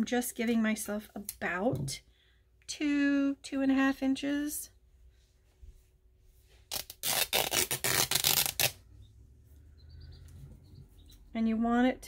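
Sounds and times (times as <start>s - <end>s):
fabric tearing by hand: 6.7s - 8.8s.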